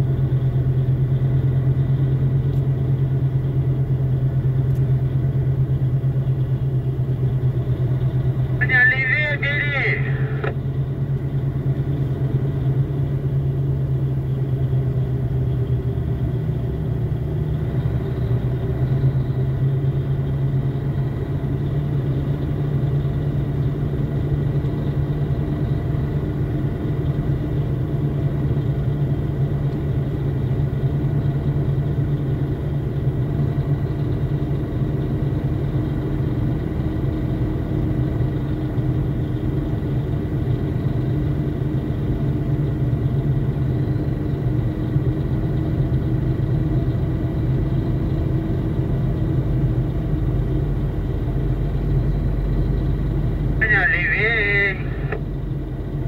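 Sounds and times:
vehicle engine droning: 0:00.0 - 0:56.0.

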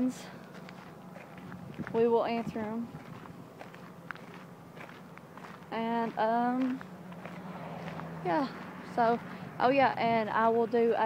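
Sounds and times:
faint footsteps: 0:00.0 - 0:10.4
steady low hum: 0:00.0 - 0:11.0.

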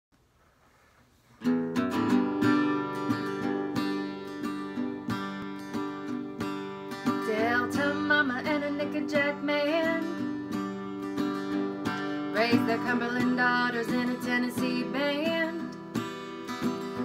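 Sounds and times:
acoustic guitar strumming: 0:01.4 - 0:17.0.

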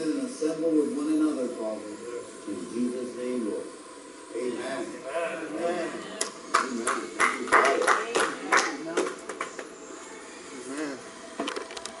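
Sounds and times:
faint murmur of voices: 0:00.0 - 0:11.7.

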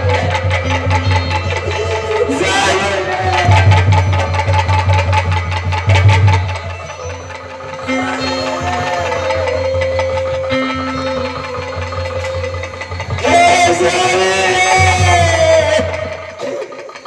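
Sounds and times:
held keyboard notes: 0:00.0 - 0:17.0
rapid drum strokes: 0:00.0 - 0:17.0.

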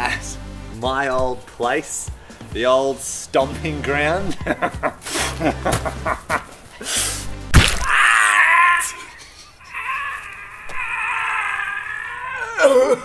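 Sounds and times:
sharp smack: 0:07.5 - 0:08.0
man yelling and wailing: 0:07.9 - 0:13.0.

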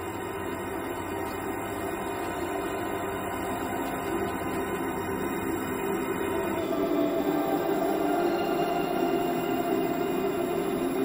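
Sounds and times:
ambient drone music: 0:00.0 - 0:11.0.

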